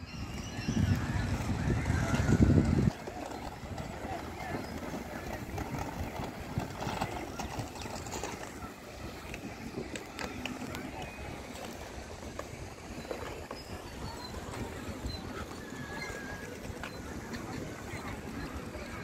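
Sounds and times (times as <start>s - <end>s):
distant indistinct voices: 0.0s - 19.0s.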